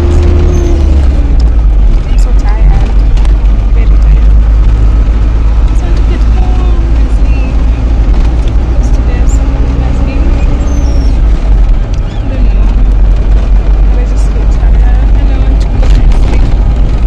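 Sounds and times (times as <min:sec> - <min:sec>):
engine and road rumble in cabin: 0:00.0 - 0:17.0
indistinct voices: 0:08.7 - 0:11.2, 0:12.0 - 0:12.9.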